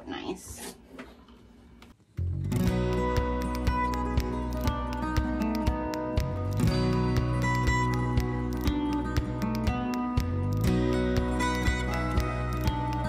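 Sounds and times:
guitar music with steady beat: 2.0s - 13.0s.

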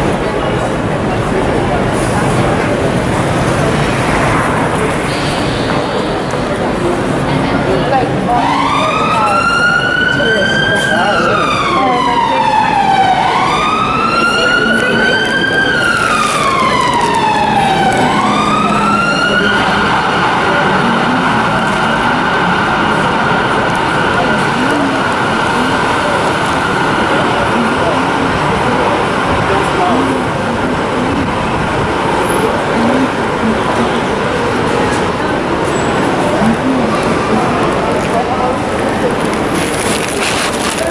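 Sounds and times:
city street noise: 0.0s - 40.9s
emergency vehicle siren wailing: 5.6s - 40.9s.

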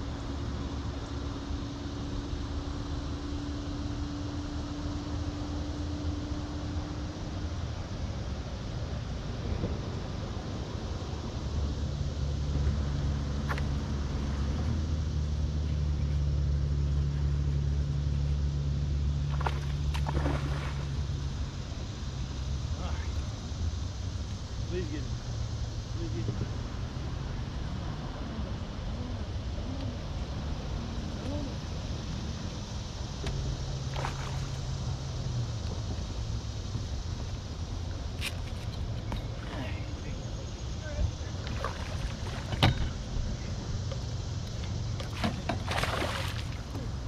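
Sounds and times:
boat motor drone: 0.0s - 47.0s.

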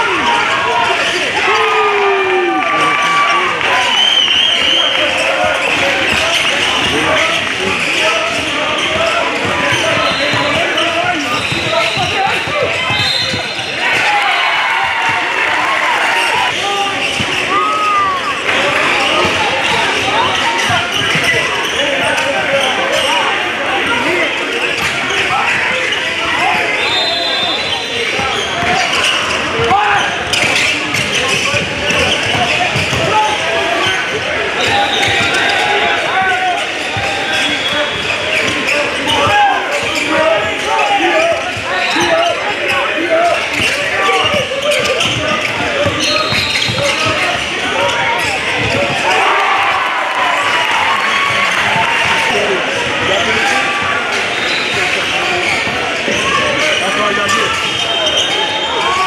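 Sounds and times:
sneakers squeaking on floor: 2.8s - 49.4s, 50.1s - 59.0s
basketball bouncing: 28.2s - 33.2s, 43.5s - 49.1s.

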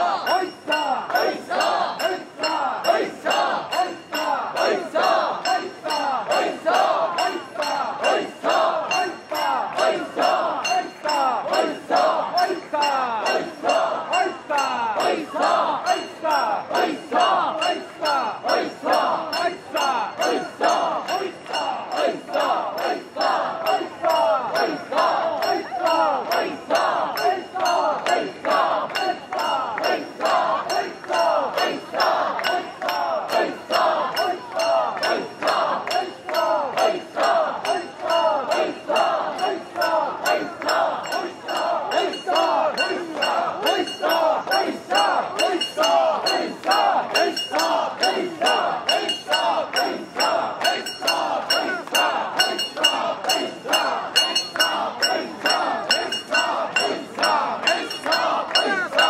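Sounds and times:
crowd shouting rhythmic chant: 0.0s - 59.0s
sharp metallic clinks: 38.5s - 59.0s.

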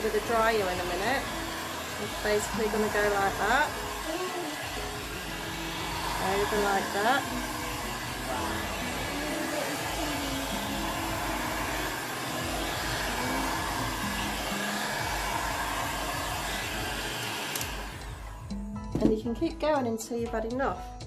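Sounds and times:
hair dryer blowing: 0.0s - 19.2s.

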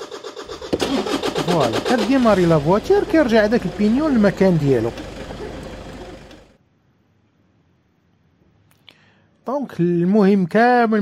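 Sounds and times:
mechanical running noise: 0.0s - 6.6s.

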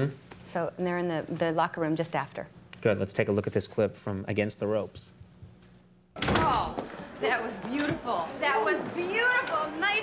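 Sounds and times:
door thudding open: 6.2s - 6.8s.

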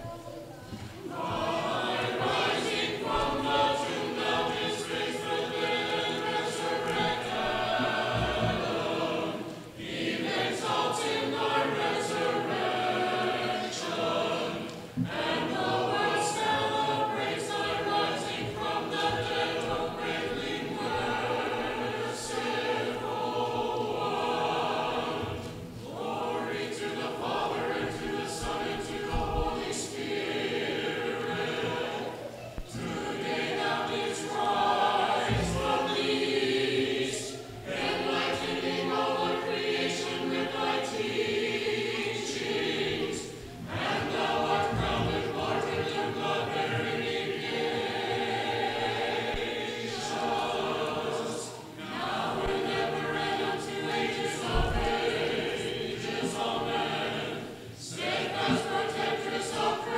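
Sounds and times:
choir singing unaccompanied: 0.0s - 59.9s.

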